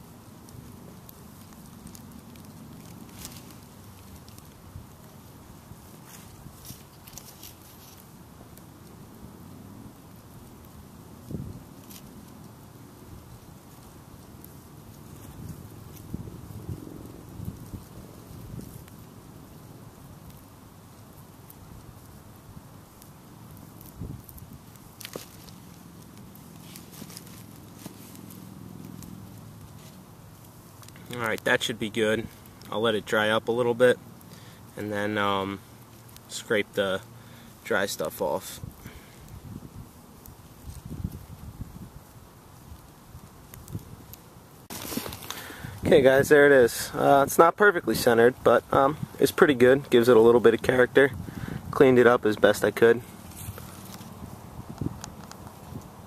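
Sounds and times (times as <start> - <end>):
wood fire crackling and popping: 0.0 - 56.0.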